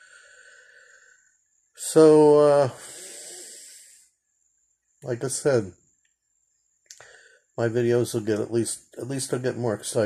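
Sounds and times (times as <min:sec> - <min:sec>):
man breathing out: 0:00.0 - 0:01.4, 0:02.7 - 0:04.1, 0:07.0 - 0:07.5.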